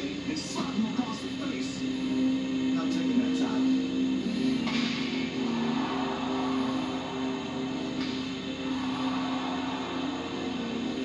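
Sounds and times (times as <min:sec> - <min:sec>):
steady hiss: 0:00.0 - 0:11.0
television music: 0:00.0 - 0:11.0.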